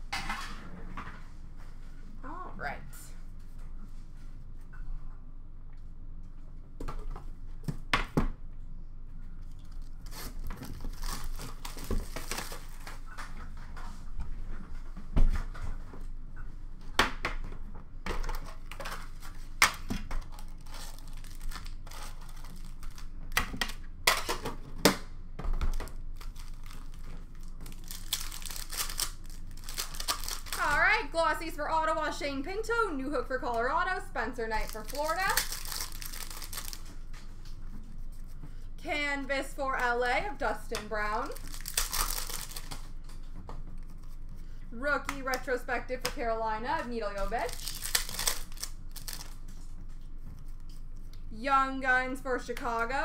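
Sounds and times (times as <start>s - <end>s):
card pack wrappers crinkling: 9.7s - 13.0s, 20.2s - 23.2s, 25.8s - 30.8s, 34.6s - 37.0s, 41.2s - 43.0s, 47.2s - 49.5s.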